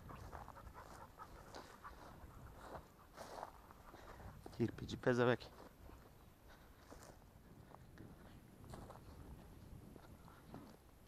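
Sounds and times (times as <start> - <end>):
dog panting: 0.0 - 4.4.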